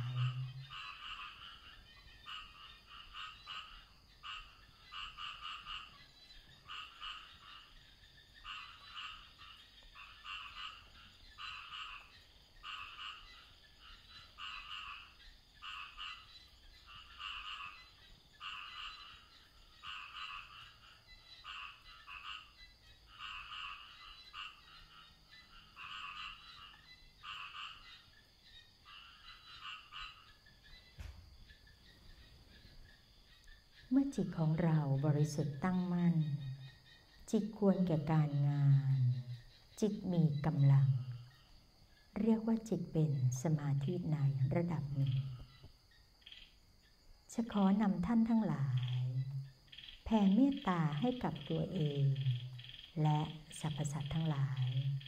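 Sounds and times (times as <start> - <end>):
frogs calling: 0.0 - 55.0.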